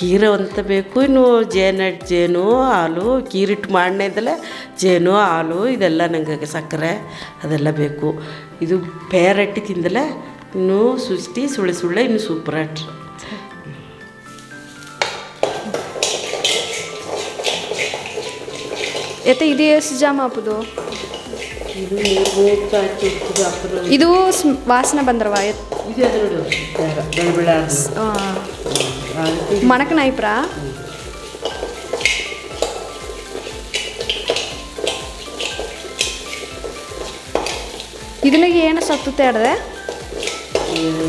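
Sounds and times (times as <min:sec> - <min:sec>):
background music: 0:00.0 - 0:41.0
spoon scraping metal pan: 0:14.4 - 0:19.7, 0:20.5 - 0:41.0
ladle scraping steel pan: 0:15.0 - 0:19.5, 0:20.6 - 0:23.9.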